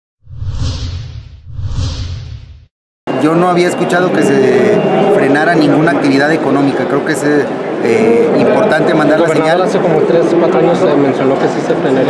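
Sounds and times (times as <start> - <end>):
low rumble: 0.2 - 2.7
whoosh sound effects: 0.2 - 2.7.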